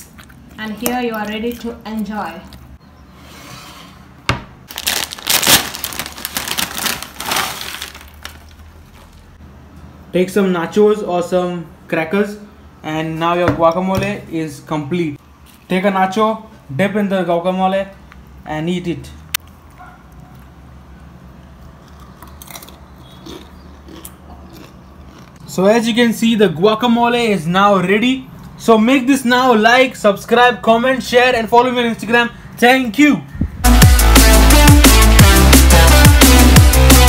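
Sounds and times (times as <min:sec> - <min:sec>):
plastic packet tearing open: 0:04.7 - 0:09.3
crunching chip: 0:04.7 - 0:09.4, 0:21.6 - 0:25.4
plastic packet crinkling: 0:04.7 - 0:09.4.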